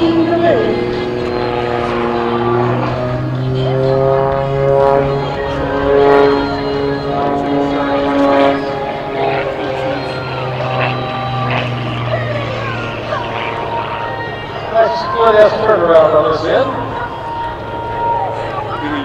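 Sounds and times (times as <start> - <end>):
plane engine and propeller drone: 0.0 - 19.0.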